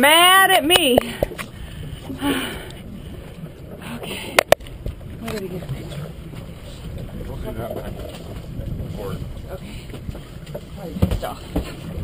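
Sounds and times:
steady low rumble: 0.0s - 12.0s
wind buffeting microphone: 0.0s - 12.0s.

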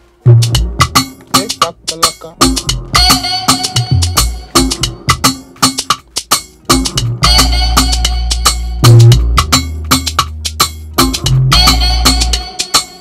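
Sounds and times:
sub bass: 0.2s - 1.4s, 2.4s - 5.3s, 6.7s - 12.5s
percussion hits: 0.2s - 13.0s.

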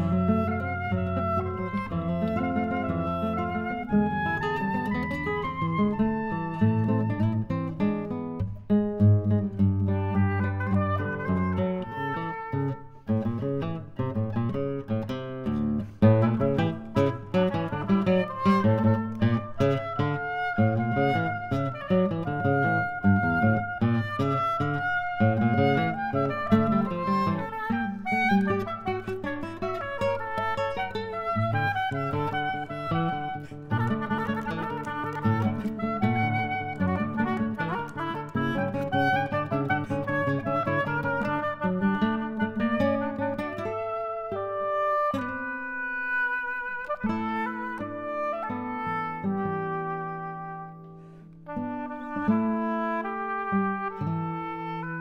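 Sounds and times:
classical guitar plucking: 0.0s - 55.0s
oboe melody: 0.0s - 55.0s.

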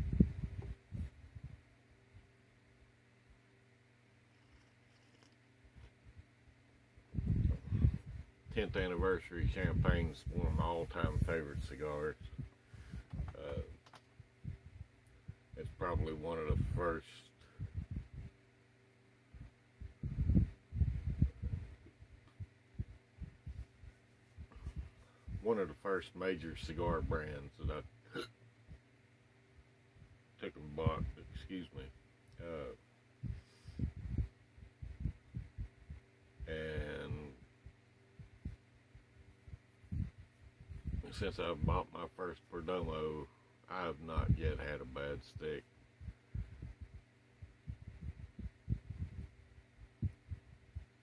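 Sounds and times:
soft low thumps: 0.0s - 1.6s, 7.1s - 15.8s, 17.5s - 18.4s, 19.3s - 25.4s, 33.2s - 41.8s, 44.2s - 51.0s
faint low hum: 0.0s - 51.0s
muffled closed-mouth coughing: 28.1s - 28.4s.

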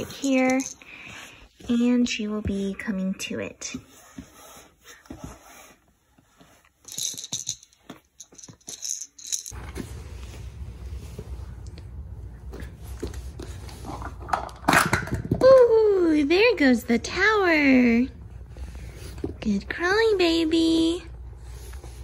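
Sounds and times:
low room hum: 0.0s - 22.0s
plastic ball rattle shaken: 0.1s - 0.8s, 6.8s - 9.6s
plastic cups clattering: 14.1s - 15.4s.

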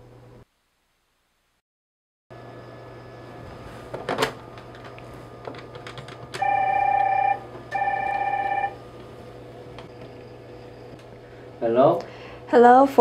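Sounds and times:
phone ringing electronically: 6.3s - 8.9s.

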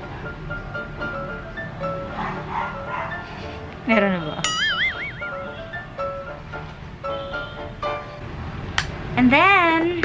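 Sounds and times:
background music: 0.0s - 8.2s.

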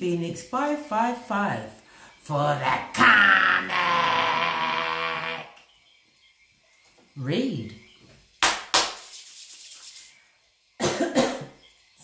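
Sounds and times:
person coughing: 10.8s - 11.6s.

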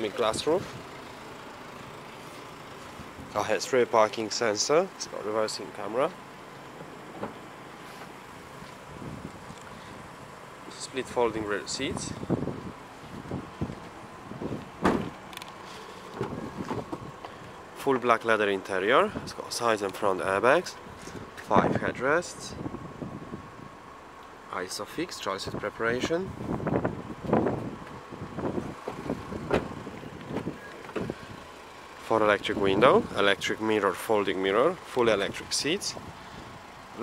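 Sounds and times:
wind on microphone: 8.9s - 9.6s, 11.9s - 15.2s, 26.3s - 31.4s.

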